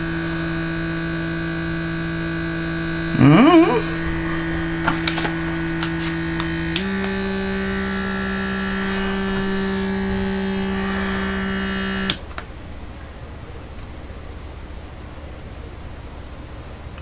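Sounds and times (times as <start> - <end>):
electric lip plumper humming: 0.0 - 12.5.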